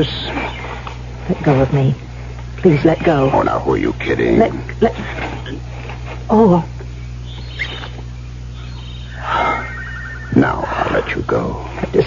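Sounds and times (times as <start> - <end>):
old recording hum: 0.0 - 12.0
person moaning: 9.2 - 11.1.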